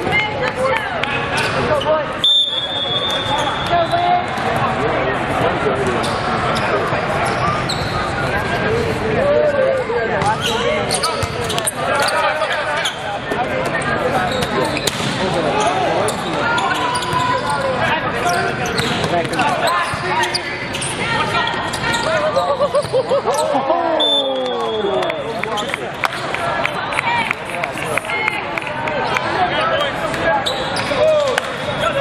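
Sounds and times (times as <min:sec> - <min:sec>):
overlapping voices and shouts: 0:23.2 - 0:30.4.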